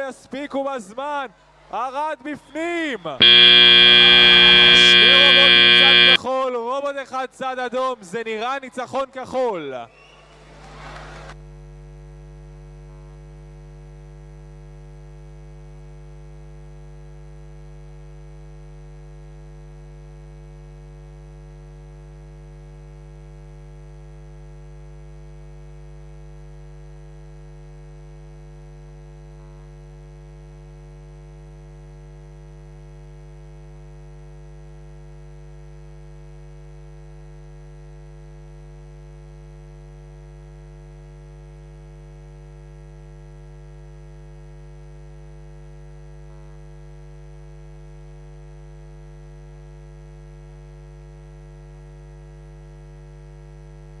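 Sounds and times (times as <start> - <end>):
electrical mains hum: 3.2 - 6.2.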